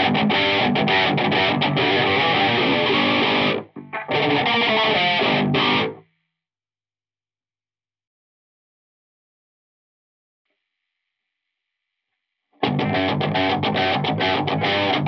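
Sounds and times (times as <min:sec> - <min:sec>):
distorted electric guitar riffing: 0:00.0 - 0:06.0, 0:12.6 - 0:15.0.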